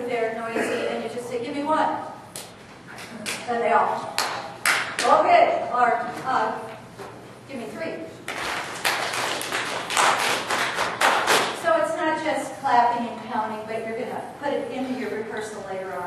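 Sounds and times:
voices in a large room: 0.0 - 16.0
group clapping and tapping: 4.1 - 5.2, 8.3 - 11.6.

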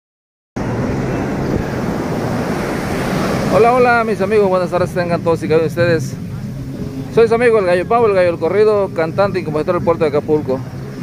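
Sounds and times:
surf breaking on beach: 0.6 - 5.3
wind noise on microphone: 0.6 - 5.3.

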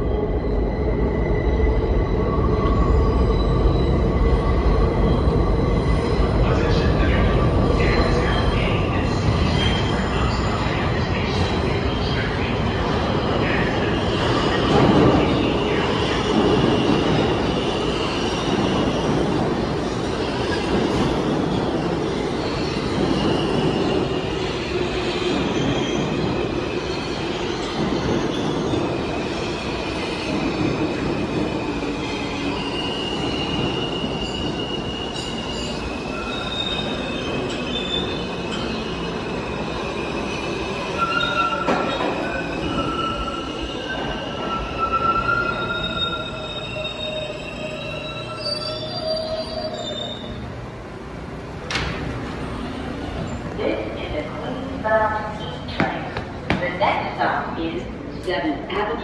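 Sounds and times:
subway train rumbling into station: 0.0 - 59.0.

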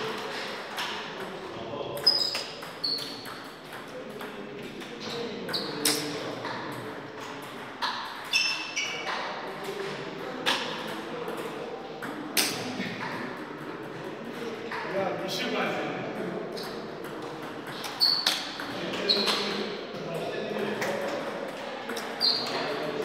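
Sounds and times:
brief high squeaks: 2.0 - 3.2, 8.3 - 9.0, 17.9 - 18.4, 22.2 - 22.6
table tennis balls clicking: 2.0 - 14.9, 16.2 - 23.0.

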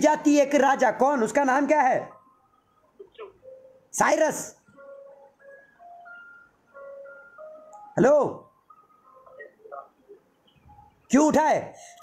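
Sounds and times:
simple electronic tune: 0.0 - 11.1.

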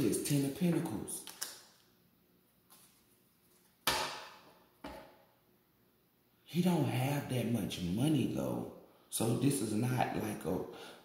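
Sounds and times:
knocks on stone countertop: 3.9 - 5.1.

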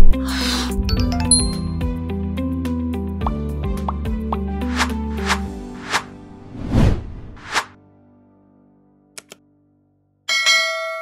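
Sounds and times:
bright bell chime: 1.0 - 1.8
double mouse click: 9.2 - 9.4.

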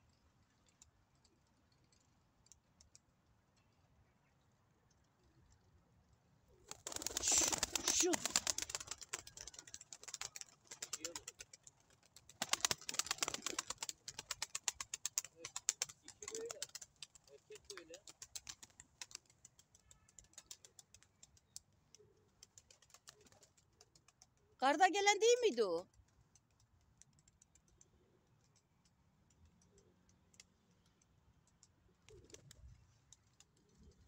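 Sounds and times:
pigeon wings clattering: 6.6 - 21.1.

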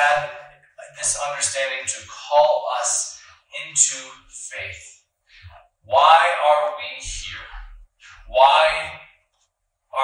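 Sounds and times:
man preaching: 0.0 - 5.0, 5.9 - 9.2.

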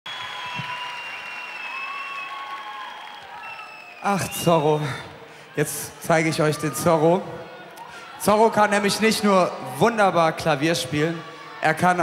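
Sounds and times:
audience applauding: 0.1 - 4.8.

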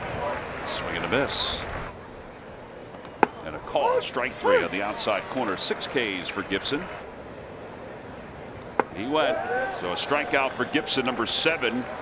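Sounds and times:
crowd noise: 0.0 - 12.0
ball smacking into mitt: 8.8 - 9.0.

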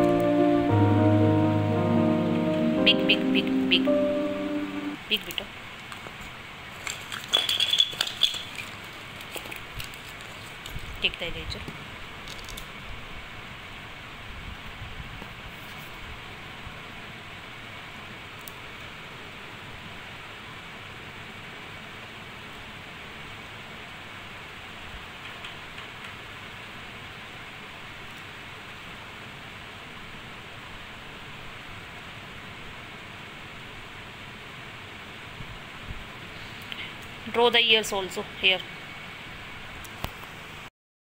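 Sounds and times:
faint high tone: 0.0 - 5.1
room noise hiss: 0.0 - 40.7.

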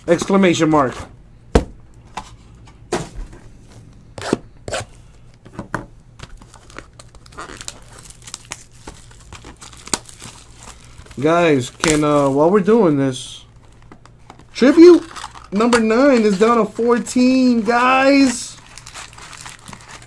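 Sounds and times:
cardboard and foil tearing: 6.4 - 12.7, 14.6 - 20.0.

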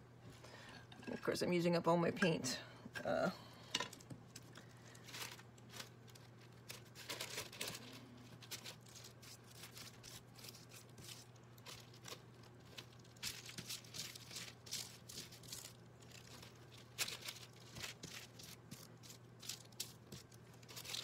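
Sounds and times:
low steady hum: 0.0 - 21.0
paper rustling and crinkling: 4.3 - 21.0.

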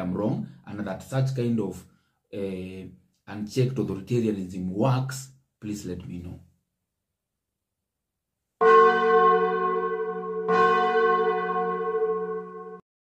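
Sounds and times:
deep bell-like chime: 8.6 - 12.8.

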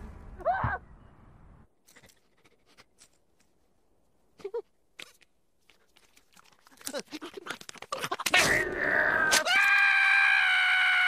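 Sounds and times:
cartoon squirrel screaming: 8.3 - 11.0.

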